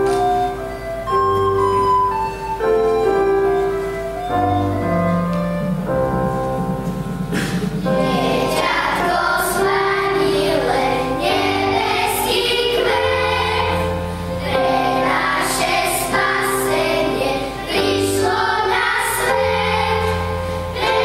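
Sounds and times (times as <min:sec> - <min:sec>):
piano accompaniment: 0:00.0 - 0:21.0
children's choir singing a carol: 0:07.3 - 0:21.0.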